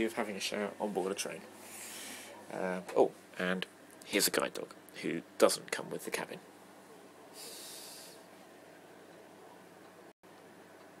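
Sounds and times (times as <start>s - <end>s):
breathy hiss: 1.6s - 2.4s, 7.3s - 8.3s.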